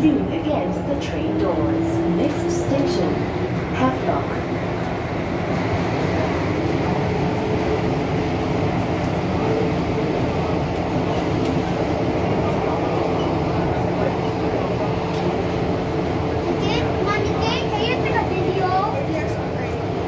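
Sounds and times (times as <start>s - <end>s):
steady train hum: 0.0s - 20.0s
train wheels rumbling on rail: 0.0s - 20.0s.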